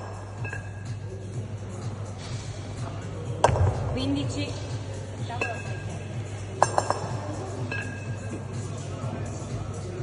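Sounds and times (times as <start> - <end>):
kettlebells clinking: 6.6 - 8.3.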